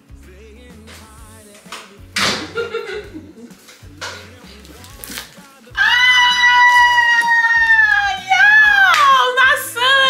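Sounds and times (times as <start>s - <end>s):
faint background music with beat: 0.0s - 10.0s
woman squealing excitedly: 5.8s - 10.0s.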